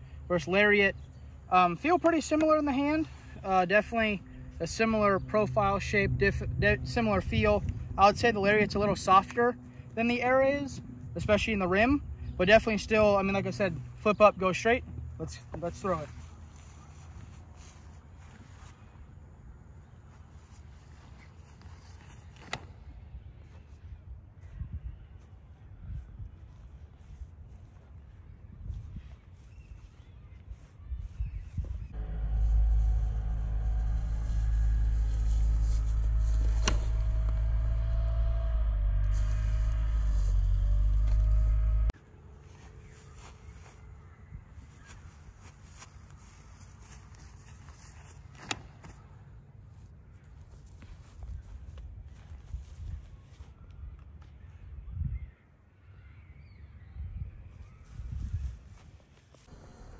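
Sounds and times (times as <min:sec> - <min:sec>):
wind rumbling on microphone: 0:04.4 - 0:09.2, 0:24.0 - 0:29.8, 0:30.4 - 0:42.0, 0:51.2 - 0:55.4, 0:56.8 - 0:59.9
loud bass-heavy music: 0:32.0 - 0:42.0.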